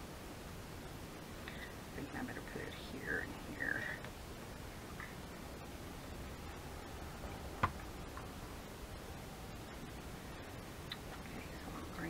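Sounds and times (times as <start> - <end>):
small object tapping on mat: 7.6 - 7.8.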